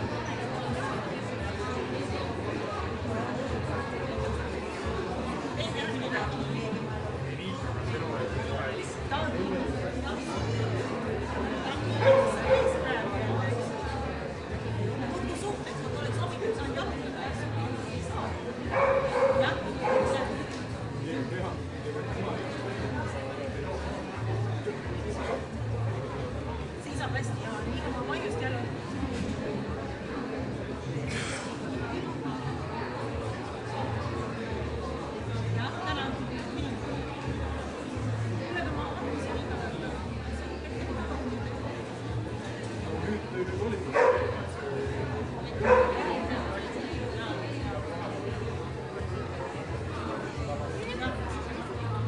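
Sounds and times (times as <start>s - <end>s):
dog barking: 12.0s - 12.8s, 18.7s - 20.2s, 44.0s - 44.4s, 45.6s - 46.0s.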